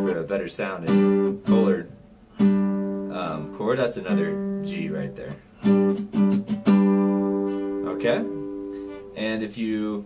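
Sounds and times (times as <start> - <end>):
acoustic guitar chord plucked: 0.0 - 9.3.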